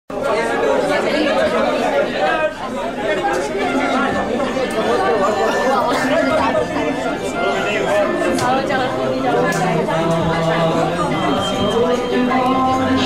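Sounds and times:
audience chattering: 0.1s - 13.0s.

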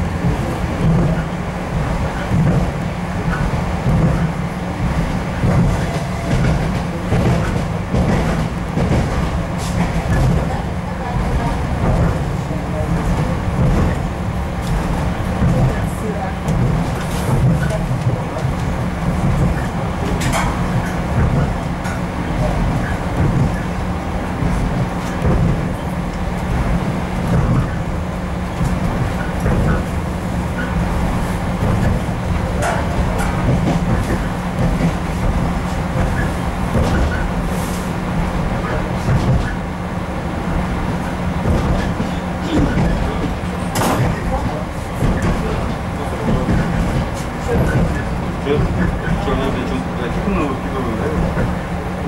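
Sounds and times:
wheels on rails: 0.0s - 37.6s.

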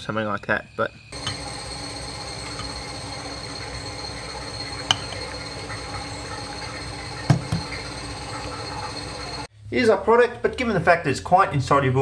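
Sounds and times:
vacuum pump running with whine: 1.1s - 9.5s.

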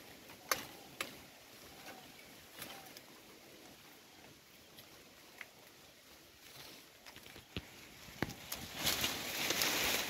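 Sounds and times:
woody stems snapping: 0.3s - 1.2s, 7.0s - 10.0s.

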